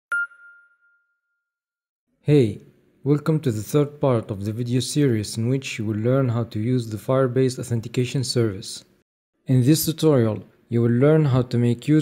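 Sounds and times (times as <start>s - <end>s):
bright chime ding: 0.1s - 1.4s.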